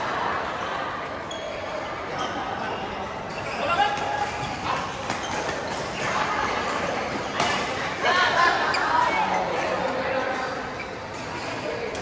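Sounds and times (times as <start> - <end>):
racket striking shuttlecock: 4.8 - 7.7.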